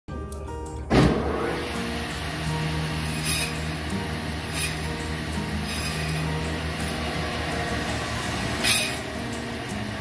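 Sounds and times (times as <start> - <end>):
background music: 0.1 - 10.0
bandsaw motor running: 1.2 - 10.0.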